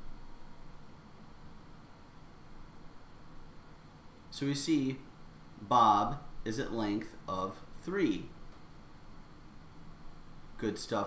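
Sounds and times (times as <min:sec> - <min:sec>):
background hiss with low hum: 0:00.0 - 0:11.0.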